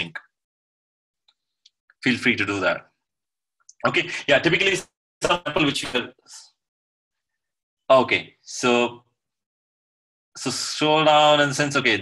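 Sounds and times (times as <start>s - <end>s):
man's voice: 3.8s - 6.4s.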